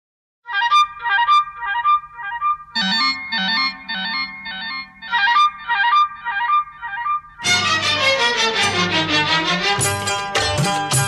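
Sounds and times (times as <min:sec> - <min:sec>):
lower melodic line: 0:01.3 - 0:07.7
high bright repeated notes: 0:01.4 - 0:08.4.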